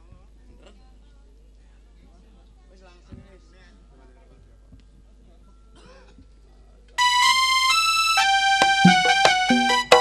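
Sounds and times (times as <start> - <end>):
electronic keyboard chords: 7.0 - 10.0.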